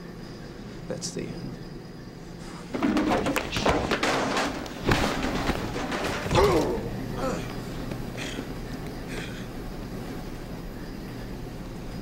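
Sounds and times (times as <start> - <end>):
rustling and scuffling: 2.4 - 6.8
man groaning: 6.3 - 7.5.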